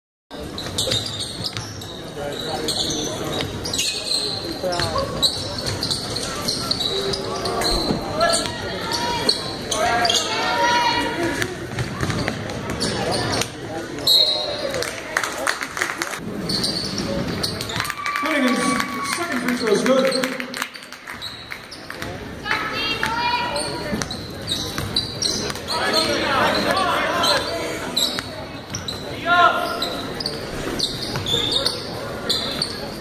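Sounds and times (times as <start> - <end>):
sneakers squeaking: 0.4 - 14.9, 16.4 - 18.0, 19.6 - 33.0.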